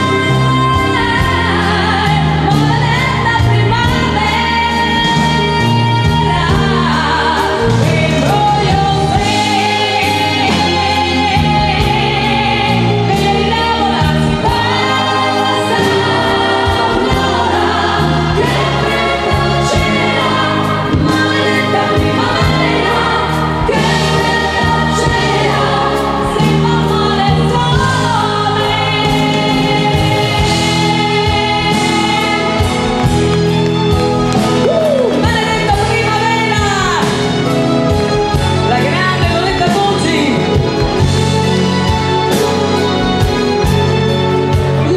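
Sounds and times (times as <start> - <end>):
woman singing pop song: 0.0 - 41.2, 44.6 - 44.9
live band accompaniment: 0.0 - 44.9.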